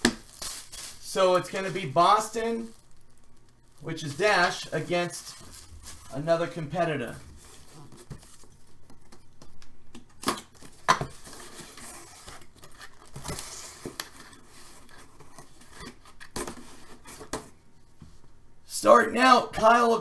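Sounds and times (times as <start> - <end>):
cardboard rustling: 0.0 - 9.3, 10.4 - 17.6.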